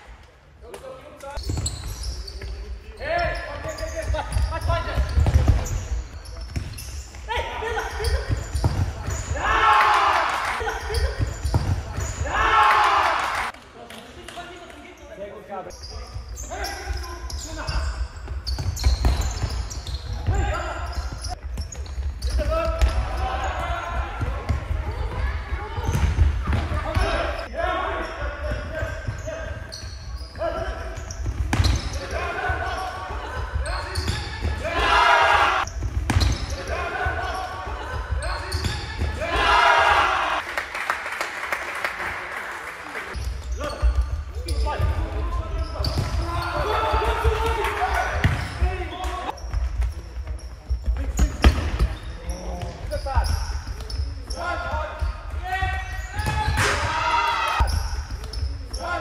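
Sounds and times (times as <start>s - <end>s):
shoe squeaks: 1.4s - 9.4s, 10.6s - 12.3s, 15.0s - 24.1s, 26.8s - 39.0s, 43.1s - 47.0s, 48.0s - 56.7s, 57.6s - 59.0s
ball kicked and bouncing on court: 3.2s - 7.3s, 8.0s - 9.4s, 10.7s - 12.4s, 18.2s - 27.5s, 30.9s - 32.7s, 35.6s - 37.2s, 43.7s - 54.1s, 54.9s - 57.0s
ball kicked and bouncing: 4.3s - 5.8s, 11.2s - 12.2s
players shouting: 7.3s - 13.6s, 31.9s - 35.7s, 36.4s - 40.4s, 45.6s - 49.3s, 54.3s - 57.8s.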